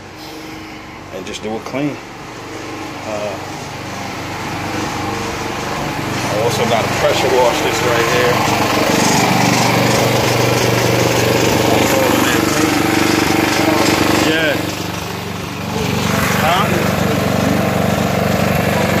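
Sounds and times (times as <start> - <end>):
small gasoline engine running: 0.4 - 19.0.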